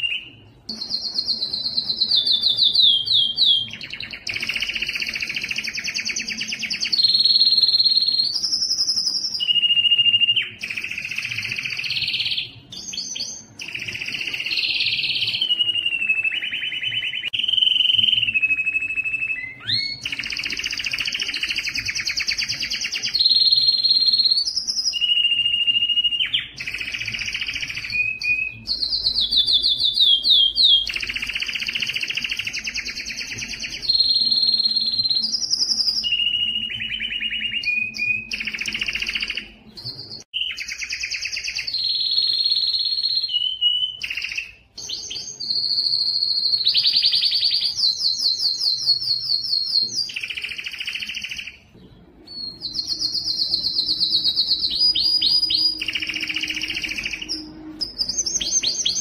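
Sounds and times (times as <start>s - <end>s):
canary singing trills: 0.0s - 59.0s.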